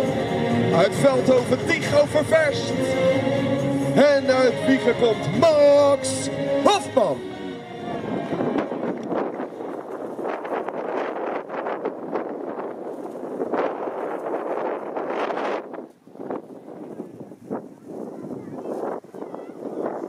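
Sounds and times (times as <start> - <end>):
wind buffeting microphone: 7.2 - 20.0.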